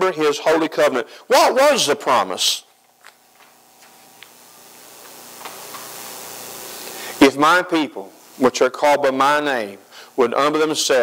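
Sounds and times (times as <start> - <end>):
steady hiss: 0.0 - 11.0.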